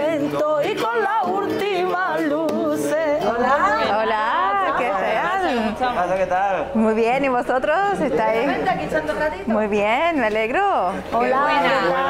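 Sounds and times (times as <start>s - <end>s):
flamenco-style singing: 0.0s - 12.0s
guitar accompaniment: 0.0s - 12.0s.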